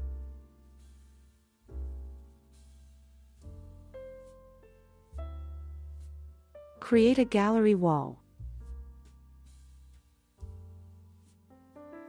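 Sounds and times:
piano chords: 3.4 - 9.4
deep bass: 4.7 - 11.0.

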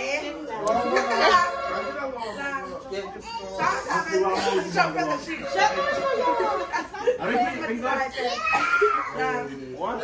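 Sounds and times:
children's voices: 8.2 - 9.3.

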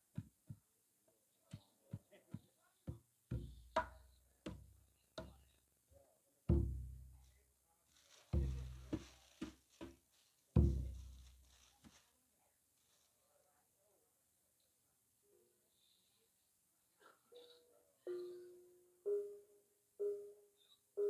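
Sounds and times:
hand drum slaps and booms: 2.9 - 5.4, 6.5 - 7.1, 10.6 - 11.1.

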